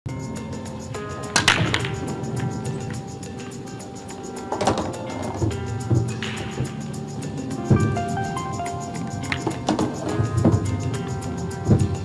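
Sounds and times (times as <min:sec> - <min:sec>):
background music: 0:00.1 - 0:12.0
pool balls clattering: 0:01.1 - 0:12.0
cue ball cracking into rack: 0:01.4 - 0:02.5, 0:04.5 - 0:06.8, 0:09.2 - 0:10.8.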